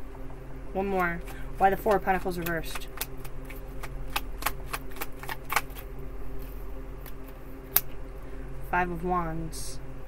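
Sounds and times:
cards being shuffled: 0.9s - 7.9s
card snap: 1.8s - 5.8s.

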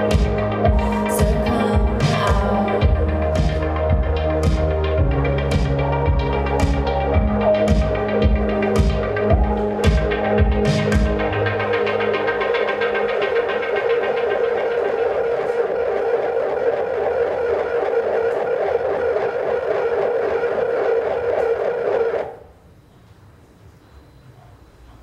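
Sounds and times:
electric bass buzzing drone: 0.0s - 22.4s.

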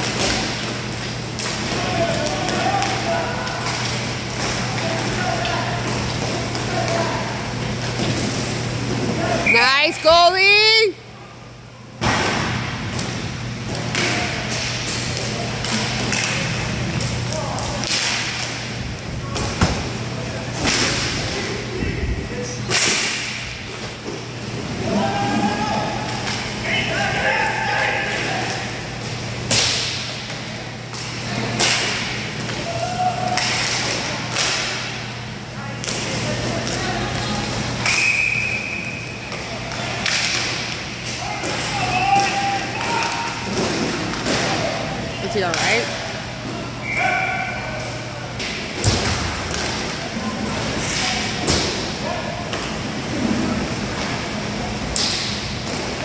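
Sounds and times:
steady low hall hum: 0.0s - 56.0s
hockey sticks and puck clacking: 13.0s - 18.7s, 29.5s - 35.0s, 35.8s - 44.7s, 48.4s - 50.0s.

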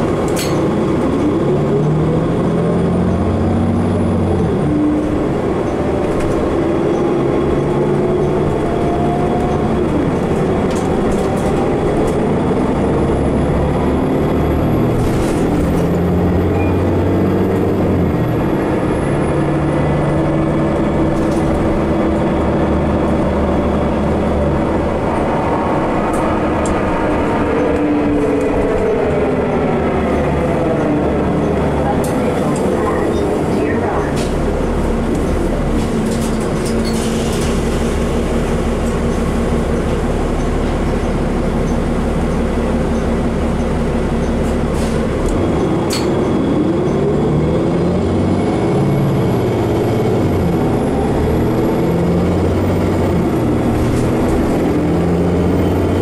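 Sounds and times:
bus engine and transmission: 0.0s - 56.0s
road and body rumble: 0.0s - 56.0s.

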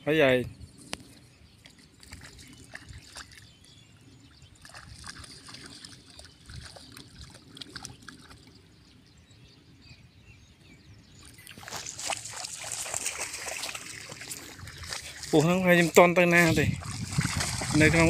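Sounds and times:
dogs splashing through water: 1.7s - 3.8s, 4.4s - 8.6s, 11.3s - 18.0s.

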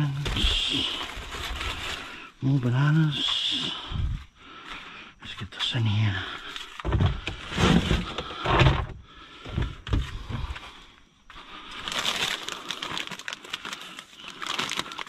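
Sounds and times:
plastic bags rustling: 0.0s - 2.6s, 11.6s - 15.0s
items thumping into plastic tub: 6.8s - 10.5s.

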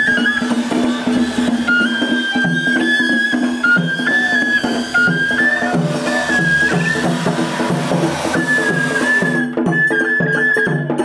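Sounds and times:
bamboo flute melody: 0.0s - 11.0s
taiko drums beating: 0.0s - 11.0s.

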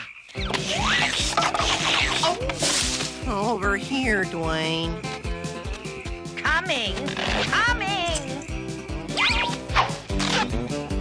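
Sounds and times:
cartoon pig oinking and squealing: 0.4s - 2.7s, 9.1s - 10.5s
background music: 0.4s - 11.0s.

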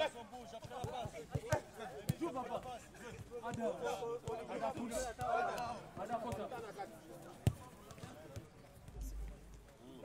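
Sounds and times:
faint chatter of players: 0.0s - 10.0s.

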